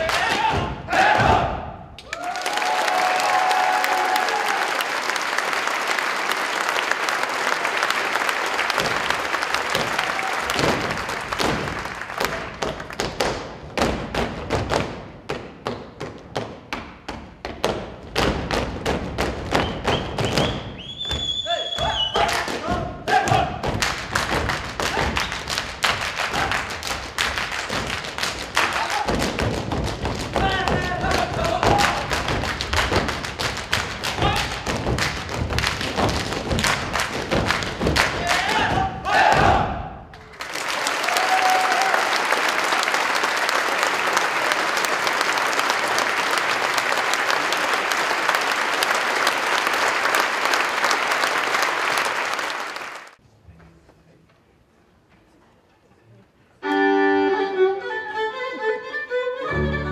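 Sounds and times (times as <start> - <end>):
audience applauding: 2.0 - 13.2, 23.8 - 29.4, 31.0 - 38.7, 40.1 - 53.2
dancers stamping boots: 8.7 - 39.7.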